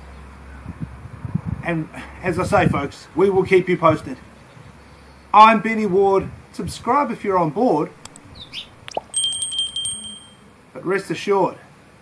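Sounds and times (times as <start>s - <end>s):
small bell trilling: 8.9s - 10.5s.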